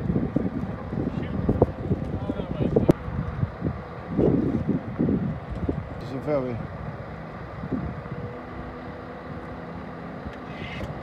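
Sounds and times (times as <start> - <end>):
truck engine running: 0.0 - 11.0
wind buffeting microphone: 0.0 - 11.0.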